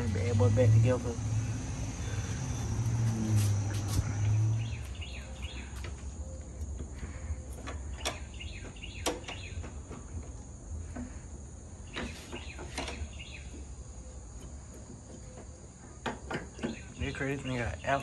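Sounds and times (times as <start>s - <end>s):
low hum: 0.0s - 8.8s.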